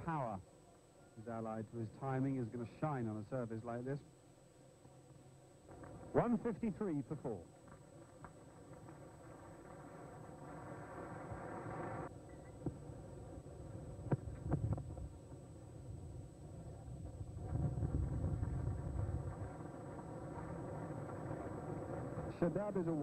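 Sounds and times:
steady hum: 0.0 - 23.0.

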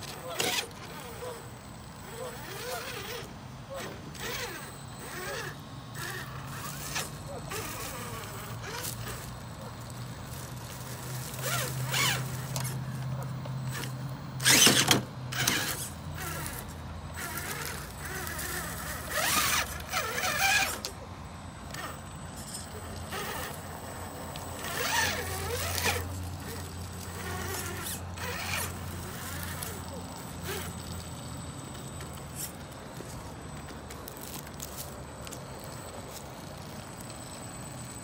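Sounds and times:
electric motor humming: 0.0 - 38.0
tyres crunching over rocks and leaves: 4.2 - 20.8, 21.7 - 38.0.

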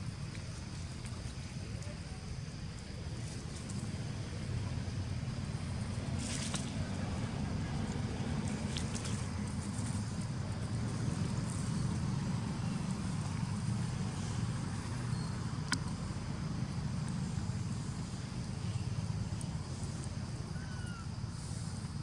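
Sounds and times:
low outdoor rumble: 0.0 - 22.0.

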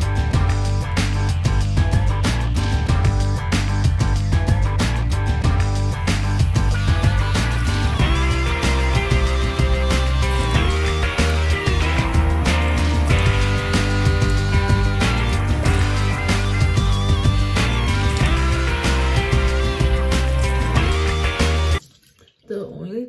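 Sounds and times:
music with strong bass line: 0.0 - 21.8.

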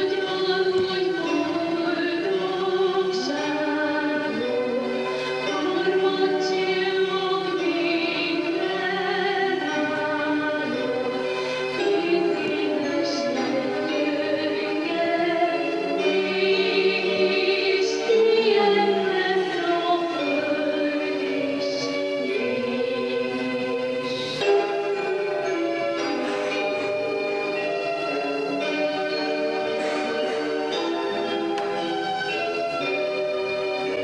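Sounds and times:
choir singing long held notes: 0.0 - 32.8.

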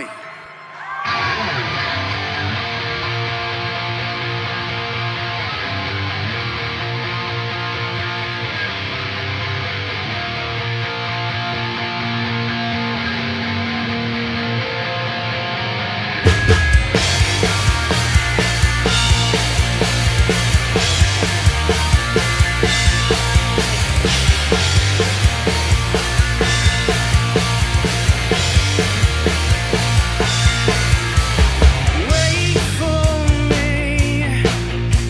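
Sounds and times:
electric guitar chords ringing: 0.0 - 35.0.

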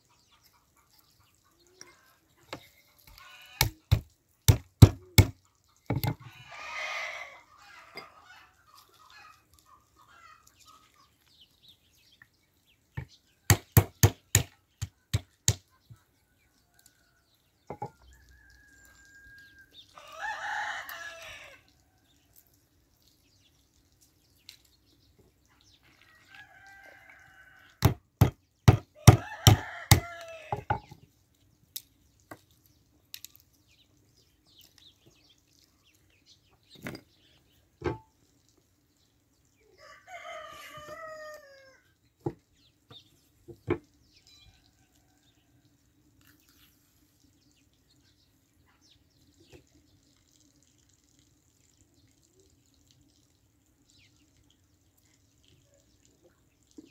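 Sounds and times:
rooster crowing: 18.0 - 21.7, 26.1 - 27.8, 29.0 - 30.6, 39.8 - 41.8.

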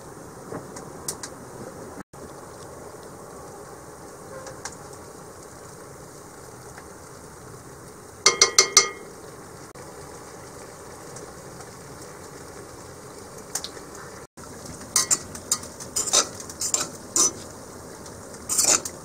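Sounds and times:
oil sizzling in skillet: 2.2 - 19.0
metal spoon tapping pot: 8.3 - 9.1, 15.0 - 17.4
fork scraping pot: 15.0 - 17.5, 18.5 - 19.0.

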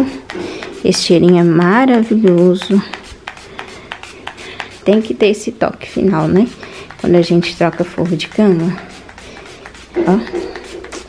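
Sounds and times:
spray bottle hissing sprays: 0.0 - 11.0.

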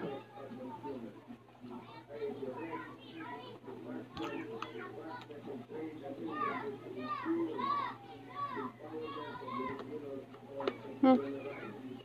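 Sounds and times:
children calling at play: 1.7 - 10.0, 10.6 - 12.0.

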